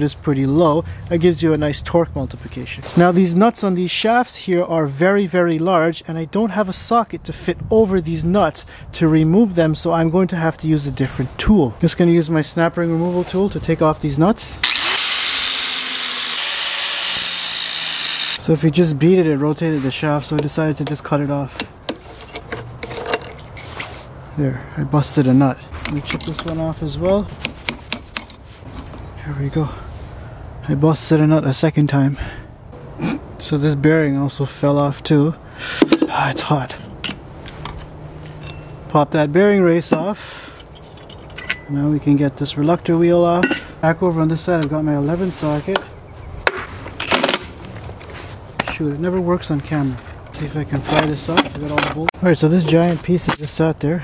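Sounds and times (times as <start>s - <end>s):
steel tool tapping on metal nut: 27.4s - 28.4s
ringing metal clinks: 38.3s - 38.8s, 40.6s - 41.7s.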